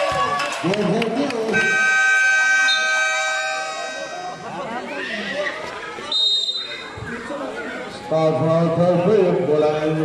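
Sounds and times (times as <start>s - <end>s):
game clock buzzer tone: 1.6s - 4.6s.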